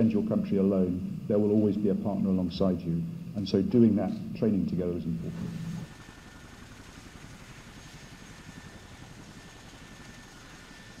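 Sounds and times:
helicopter turbine engines: 0.0 - 11.0.

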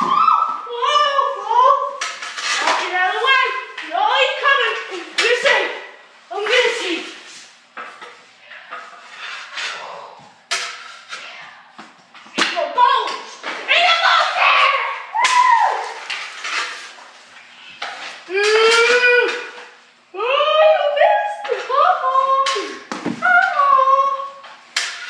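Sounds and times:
hockey sticks clacking: 1.8 - 19.8, 21.4 - 25.0
boys shouting: 12.6 - 16.0.

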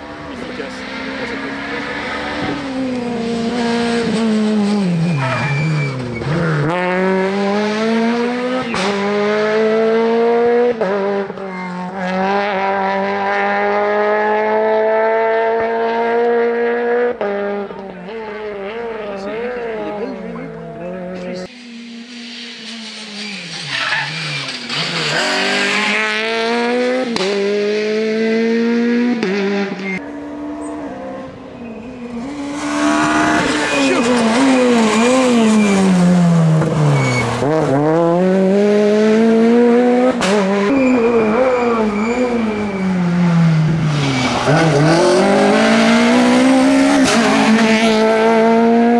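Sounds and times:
rally car engine at high revs: 0.0 - 48.9.

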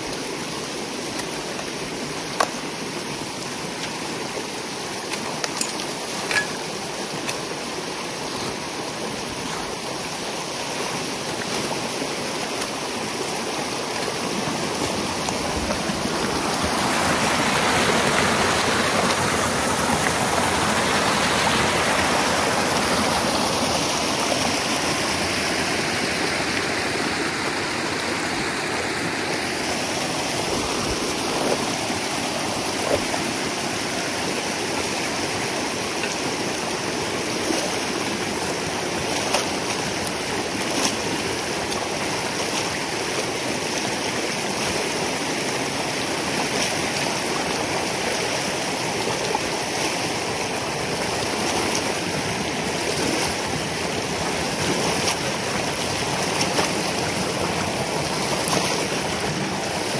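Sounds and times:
water rushing and gurgling: 0.0 - 59.9.

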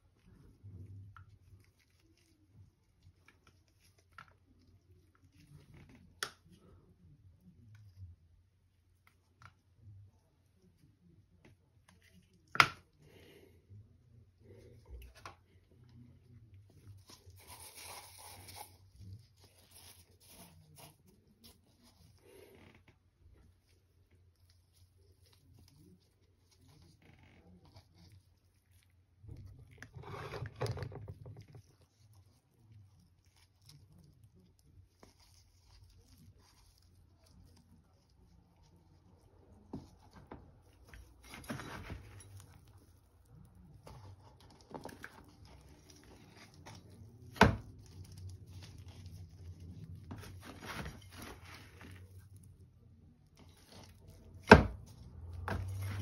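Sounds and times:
trowel scraping potting mix: 16.9 - 22.3.

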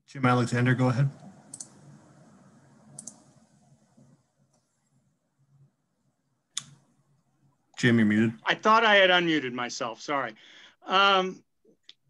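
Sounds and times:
faint low room hum: 0.1 - 12.0.

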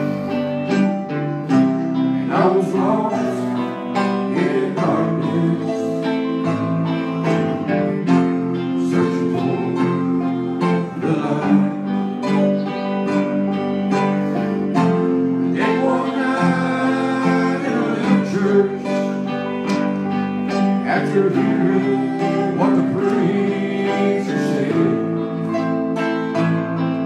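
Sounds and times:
electric keyboard: 0.0 - 27.0
guitar: 0.0 - 27.0
person singing: 0.0 - 27.0.

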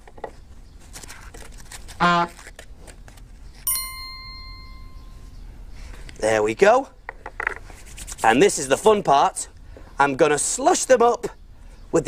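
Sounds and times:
bright ding ringing: 3.7 - 5.4.

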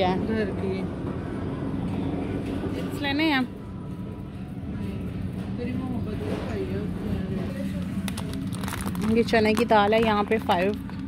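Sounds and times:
supermarket background rumble: 0.0 - 11.0.

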